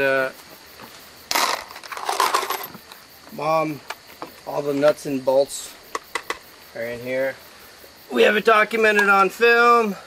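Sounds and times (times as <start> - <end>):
metal nuts and bolts rattling: 1.3 - 2.8.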